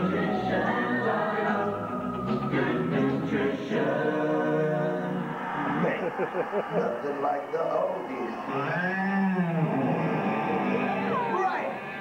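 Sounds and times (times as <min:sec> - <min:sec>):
music from sound system: 0:00.0 - 0:05.8, 0:09.4 - 0:12.0
voices from sound system: 0:05.4 - 0:12.0.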